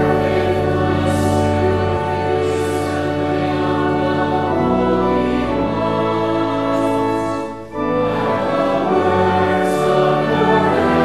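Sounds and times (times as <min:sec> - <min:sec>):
congregation singing: 0:00.0 - 0:11.0
instrumental accompaniment: 0:00.0 - 0:11.0.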